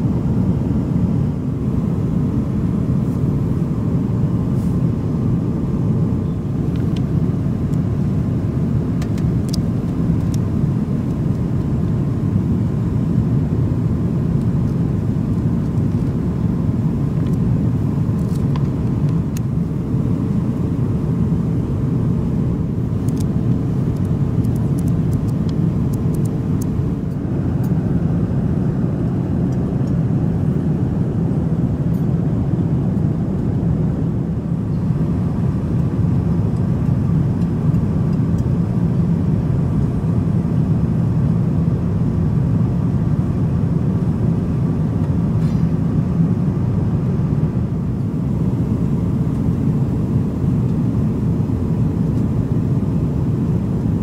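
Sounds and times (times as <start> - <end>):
low rumble of engines and airflow: 0.0 - 54.0.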